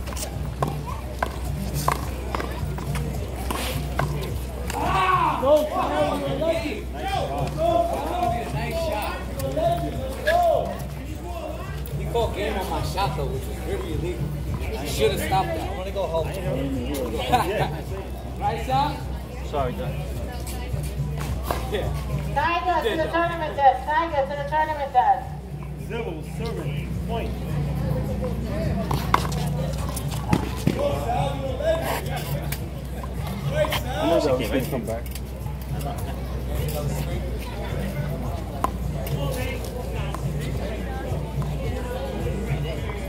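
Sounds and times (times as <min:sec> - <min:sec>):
people talking: 0:00.0 - 0:43.0.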